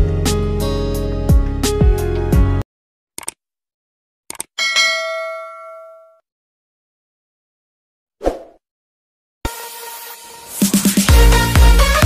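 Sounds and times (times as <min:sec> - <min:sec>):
bell ding tones: 0:04.6 - 0:06.2.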